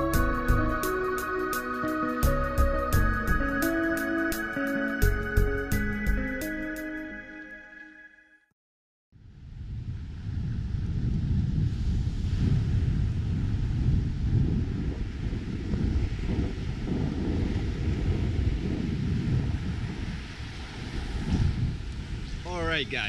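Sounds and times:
wind buffeting microphone: 9.2s - 23.0s
surf washing: 14.9s - 23.0s.

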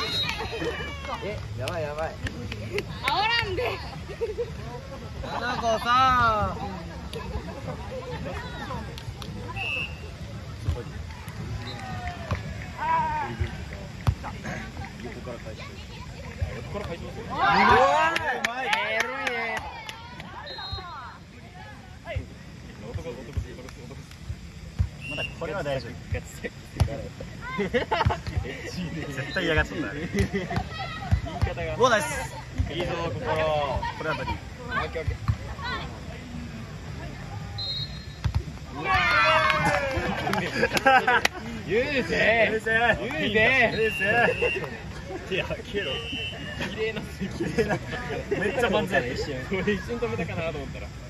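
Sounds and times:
scattered voices of players: 0.0s - 51.0s.

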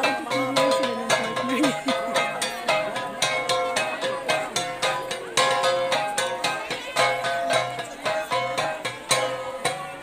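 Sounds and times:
bronze gongs beaten with sticks: 0.0s - 10.0s.

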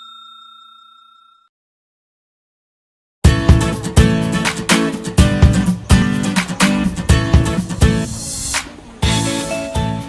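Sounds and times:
ringing bell ding: 0.0s - 1.5s.

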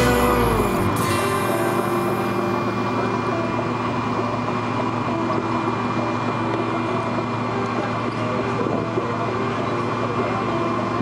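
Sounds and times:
airliner engine drone: 0.0s - 11.0s
music: 0.0s - 11.0s
steady high whine: 0.0s - 11.0s.

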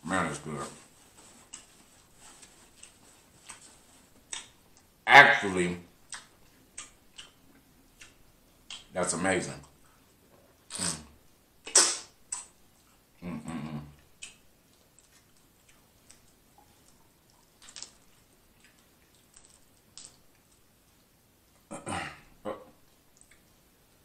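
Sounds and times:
person saying mm: 10.7s - 11.1s, 13.2s - 14.0s.

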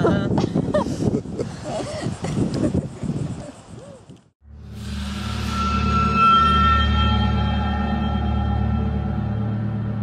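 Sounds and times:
ominous soundtrack music: 4.4s - 10.0s.

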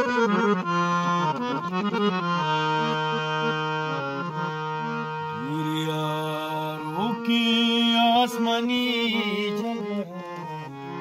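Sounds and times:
harmonium chords: 0.0s - 11.0s.

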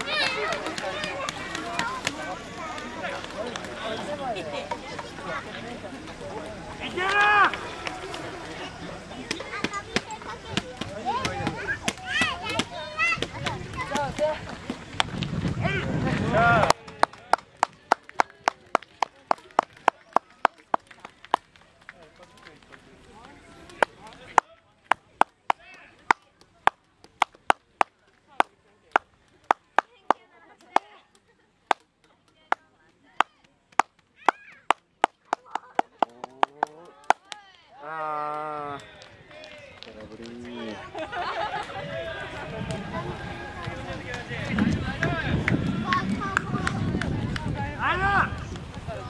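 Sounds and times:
spectators clapping in rhythm: 0.0s - 3.8s, 16.4s - 30.9s, 33.2s - 37.6s, 43.6s - 47.6s
faint crowd calls: 0.0s - 26.8s, 33.7s - 49.0s.

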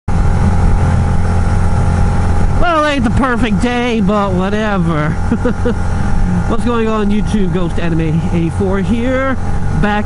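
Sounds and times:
motorcycle engine droning: 0.1s - 10.0s
rushing wind: 0.1s - 10.0s.

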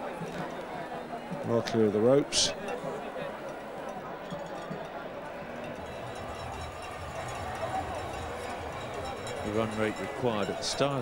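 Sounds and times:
crowd of spectators chattering: 0.0s - 11.0s.

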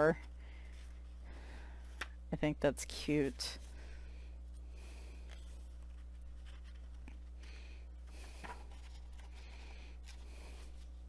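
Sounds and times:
steady low hum: 0.0s - 11.0s
paper pages rustling: 5.3s - 7.4s, 8.3s - 11.0s.

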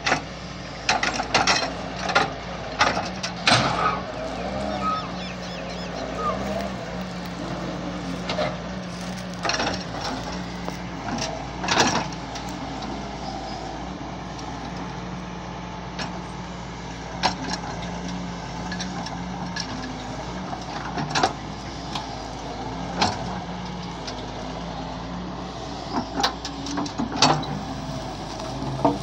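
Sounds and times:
diesel excavator engine running: 0.0s - 29.0s
bucket scraping soil: 5.9s - 11.4s.

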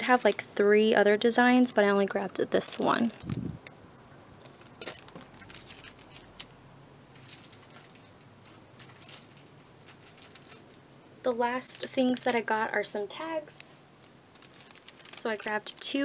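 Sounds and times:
plastic packets rustling: 0.0s - 1.0s, 2.6s - 3.5s, 4.4s - 10.8s, 11.5s - 16.0s.

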